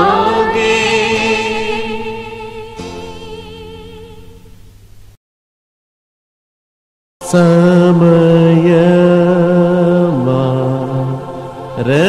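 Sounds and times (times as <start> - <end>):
man chanting in long held notes: 0.0 - 2.8, 7.2 - 12.0.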